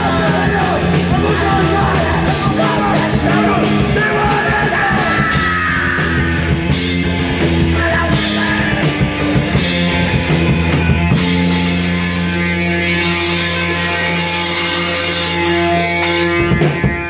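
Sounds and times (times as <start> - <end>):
punk rock band playing: 0.0 - 17.0.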